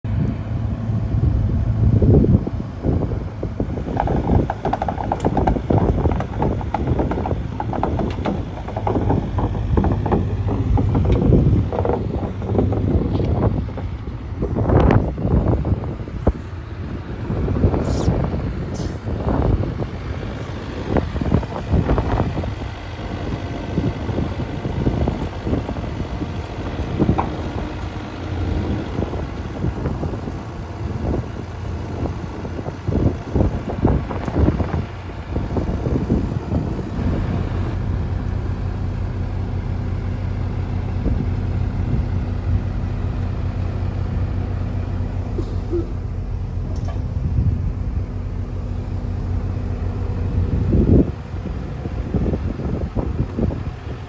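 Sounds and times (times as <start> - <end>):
diesel engine running: 0.0 - 54.0
wind on microphone: 0.1 - 38.7, 46.6 - 54.0
steel clanks and knocks: 3.8 - 13.9.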